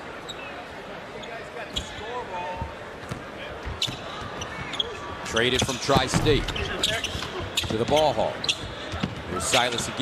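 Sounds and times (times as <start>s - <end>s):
basketball bouncing on court: 5.6s - 8.1s.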